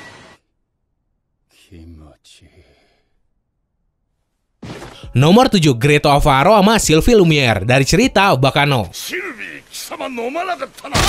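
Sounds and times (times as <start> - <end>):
man speaking: 1.5 - 2.8, 5.1 - 11.0
breathy exhale: 2.5 - 3.2.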